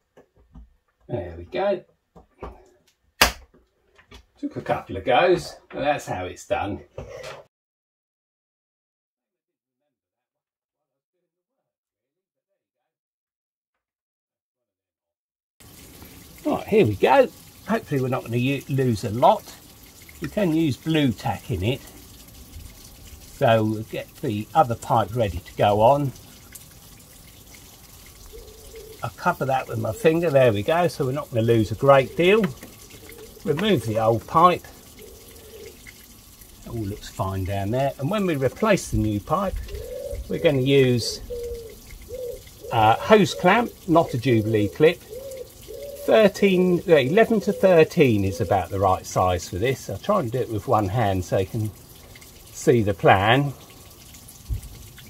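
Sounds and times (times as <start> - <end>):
sharp metallic snap: 3.2 - 3.4
hose water splashing: 15.6 - 55.0.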